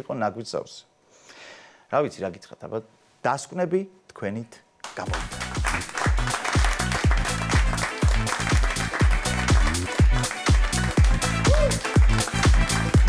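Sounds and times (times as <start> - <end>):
electronic house dance music: 5.0 - 13.0.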